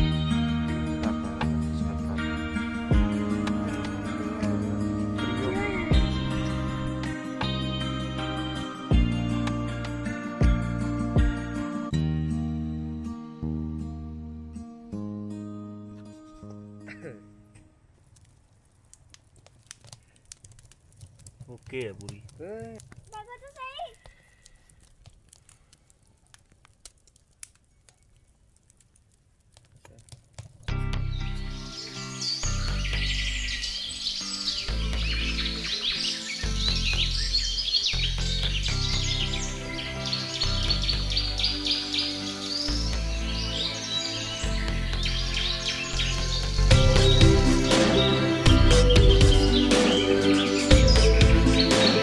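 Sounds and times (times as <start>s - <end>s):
birds chirping: 0.0s - 9.4s, 30.9s - 52.0s
music with low beat: 0.0s - 11.6s, 46.5s - 52.0s
campfire crackling: 0.0s - 12.0s, 13.0s - 52.0s.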